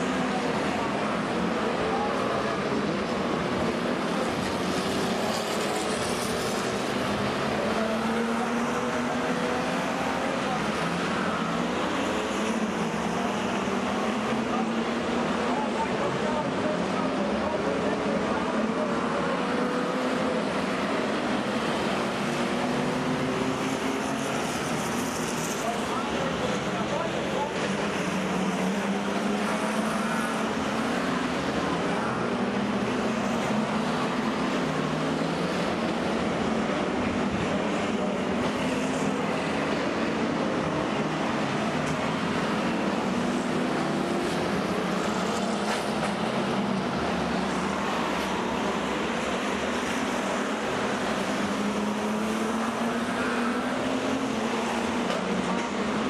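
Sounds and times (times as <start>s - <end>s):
stock car engines racing: 0.0s - 56.0s.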